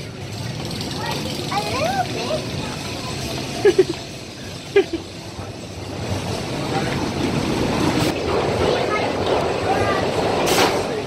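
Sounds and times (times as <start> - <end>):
people's voices: 0.0 - 11.0
roller coaster train rumbling: 0.0 - 11.0.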